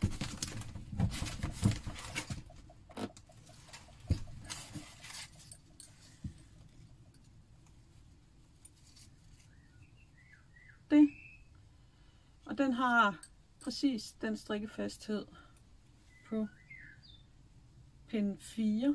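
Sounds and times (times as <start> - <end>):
hands handling balls of yarn: 0.0 - 9.7
faint bird chirps: 9.0 - 11.6, 16.0 - 17.4.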